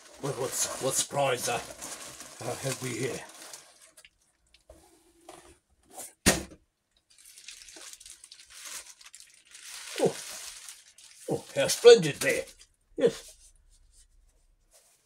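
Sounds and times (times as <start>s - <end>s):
plastic packaging crinkling: 0.0s - 4.6s, 7.1s - 12.7s.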